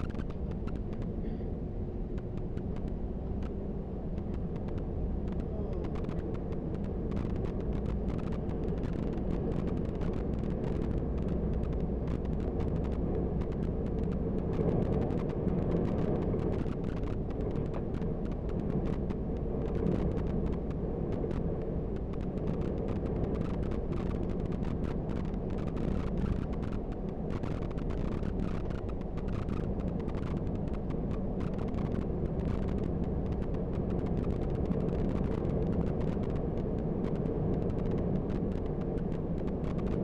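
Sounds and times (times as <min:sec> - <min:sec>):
small rattles and clicks: 0:00.0 - 0:01.1, 0:02.1 - 0:40.0
bus engine and road rumble: 0:00.0 - 0:40.0.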